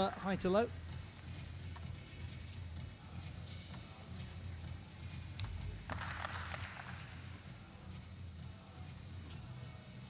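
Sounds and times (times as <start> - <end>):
background music: 0.0 - 10.0
spectators clapping: 5.9 - 7.2.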